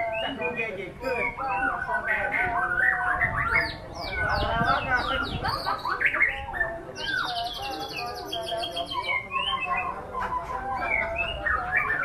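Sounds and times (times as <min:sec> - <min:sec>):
bird singing whistled phrases: 0:00.0 - 0:12.0.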